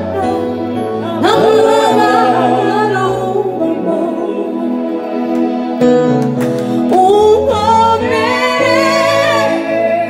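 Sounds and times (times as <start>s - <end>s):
women singing gospel through pa: 1.0s - 4.8s, 7.0s - 10.0s
group singing along: 1.1s - 5.0s, 7.9s - 10.0s.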